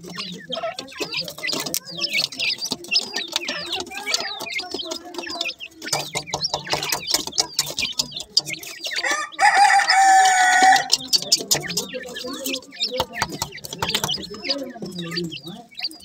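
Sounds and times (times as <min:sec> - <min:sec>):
chicks peeping and chirping: 0:00.0 - 0:16.0
chicks scuffling: 0:00.0 - 0:16.0
held bird call: 0:00.0 - 0:16.0.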